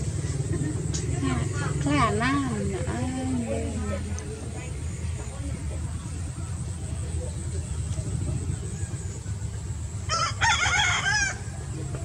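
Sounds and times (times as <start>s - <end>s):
rooster crowing: 10.1s - 11.6s.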